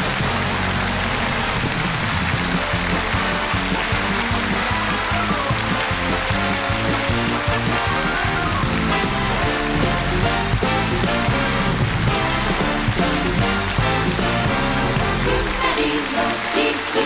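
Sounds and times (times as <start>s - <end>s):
audience applause: 0.0s - 17.0s
live band playing: 1.2s - 16.9s.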